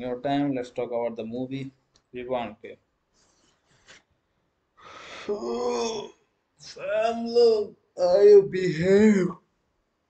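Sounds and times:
man breathing: 0:04.8 - 0:05.3.

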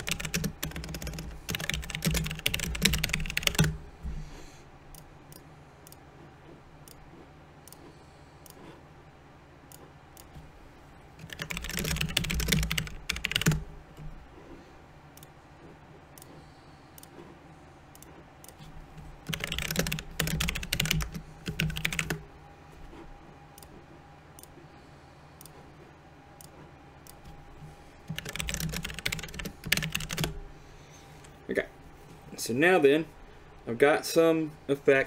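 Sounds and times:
computer keyboard typing: 0:00.0 - 0:03.8, 0:11.2 - 0:14.1, 0:18.0 - 0:22.2, 0:28.0 - 0:30.4.

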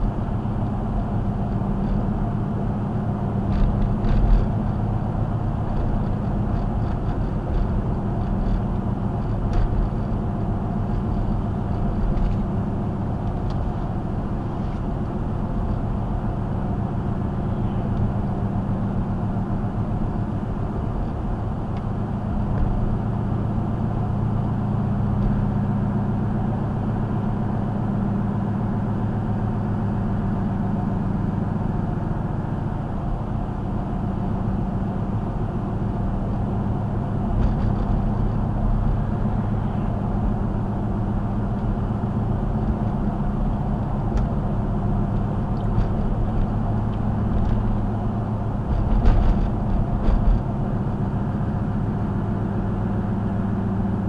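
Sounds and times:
car engine drone: 0:00.0 - 0:54.0.

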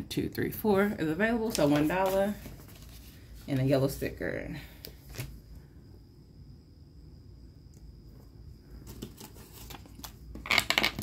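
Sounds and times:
faint handling noise: 0:01.4 - 0:03.8
dice rolling on a table: 0:10.4 - 0:11.0.

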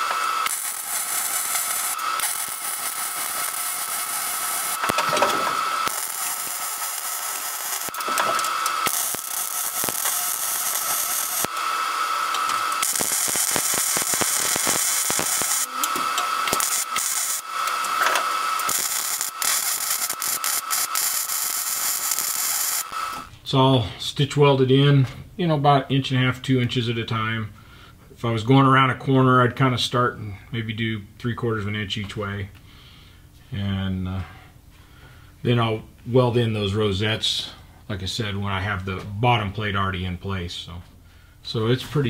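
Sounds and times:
welder crackling and hissing: 0:00.0 - 0:23.6.

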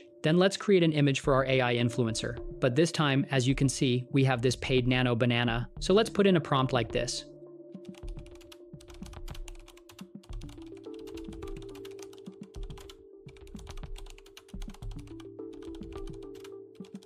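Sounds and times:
soft background music: 0:00.0 - 0:17.0
typing on computer keyboard: 0:07.8 - 0:17.0.

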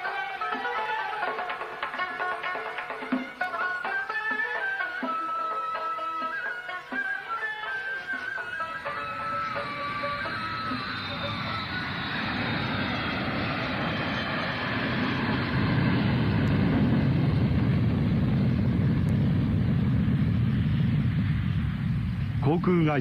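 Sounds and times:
sitar-like music: 0:00.0 - 0:10.5
vehicle engine drone: 0:08.2 - 0:23.0.

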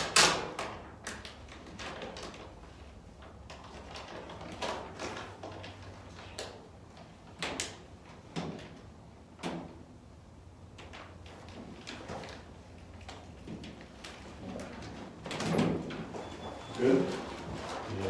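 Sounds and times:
vinyl decal sheet rustling: 0:00.0 - 0:09.4, 0:10.4 - 0:18.0.

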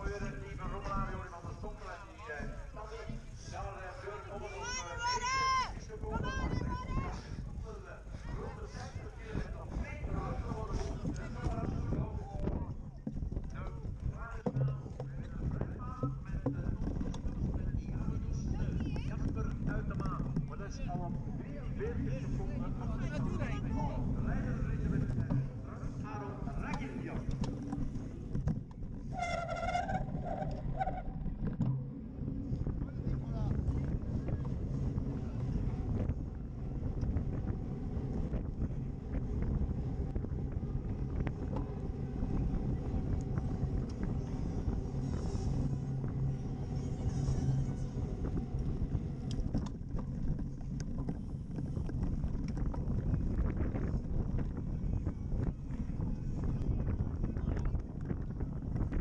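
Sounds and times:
bike rumbling and rattling: 0:00.0 - 0:59.0
wind noise on microphone: 0:00.0 - 0:59.0.

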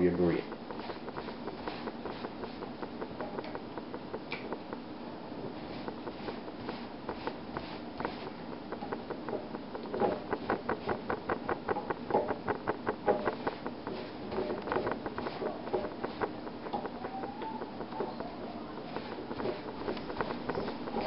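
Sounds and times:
scratchy pastry brush strokes: 0:00.0 - 0:04.0, 0:05.4 - 0:21.0.

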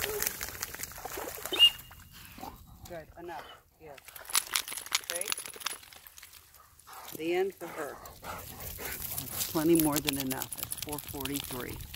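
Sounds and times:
dog splashing in water: 0:00.0 - 0:02.0.

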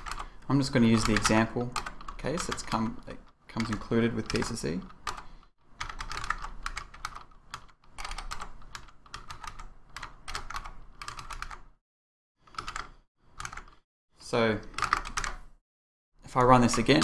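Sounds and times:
typing on computer keyboard: 0:00.0 - 0:11.7, 0:12.5 - 0:13.8, 0:14.7 - 0:15.4.

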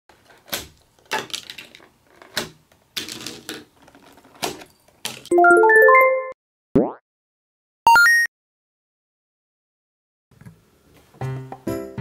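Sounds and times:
toy swords knocking and clattering: 0:00.2 - 0:05.3.

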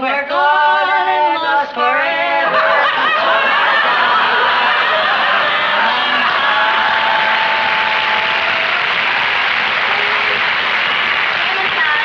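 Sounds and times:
studio audience laughter: 0:02.4 - 0:06.4
audience applause: 0:02.5 - 0:12.0.

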